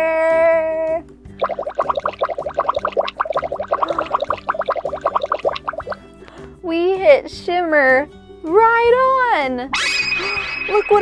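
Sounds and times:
faint background music: 0.0 - 11.0
rapid bubbling pops: 1.4 - 6.0.

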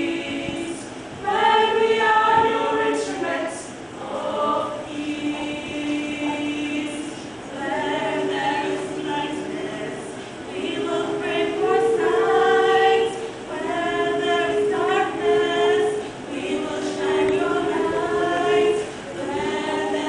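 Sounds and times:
choir singing in harmony: 0.0 - 20.0.

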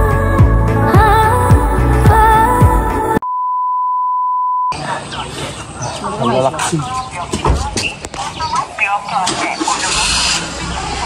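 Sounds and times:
music: 0.0 - 3.2
steady electronic beep: 3.3 - 4.8
voices: 4.7 - 11.0.

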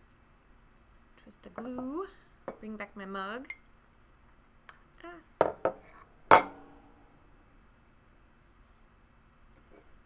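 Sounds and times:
ceramic mug knocking on wooden table: 5.4 - 6.5.

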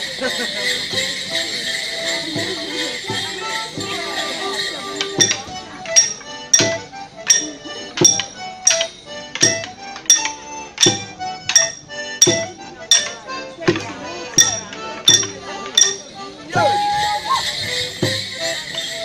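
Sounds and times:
jangle of bells: 0.0 - 13.6, 14.4 - 19.0
folk dance music: 0.0 - 19.0
iron bars clashing: 5.0 - 13.2, 14.4 - 16.1.

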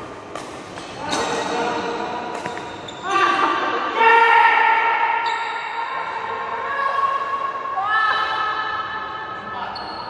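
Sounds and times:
shoes squeaking on court floor: 0.3 - 3.4, 5.2 - 5.8, 9.7 - 10.0.

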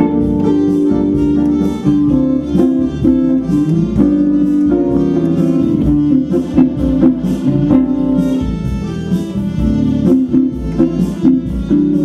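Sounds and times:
acoustic guitar: 0.0 - 12.0
electric lead guitar: 0.0 - 12.0
sustained keyboard chords: 0.0 - 12.0.

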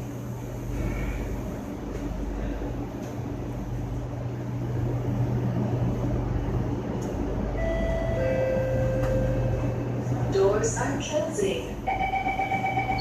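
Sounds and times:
metro train rumbling: 0.0 - 13.0
two-note onboard chime: 7.6 - 9.6.

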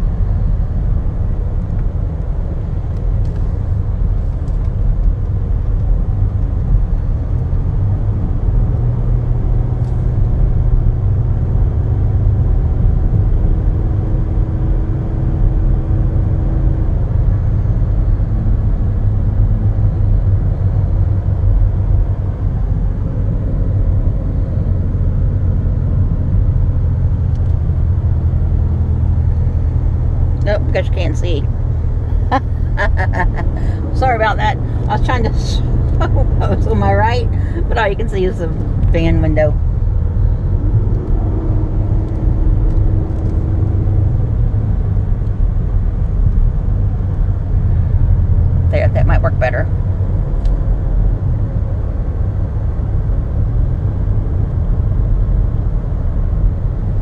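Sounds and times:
van engine and tyres on road: 0.0 - 57.0.

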